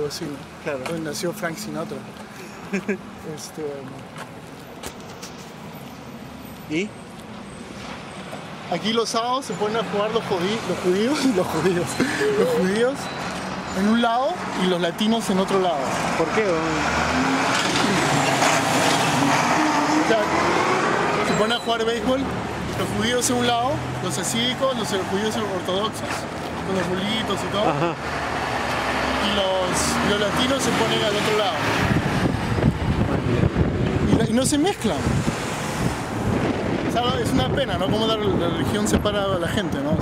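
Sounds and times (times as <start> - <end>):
person speaking: 9.2 - 13.1
car driving past: 15.8 - 21.5, 27.9 - 32.6
gusty wind on microphone: 31.6 - 40.0.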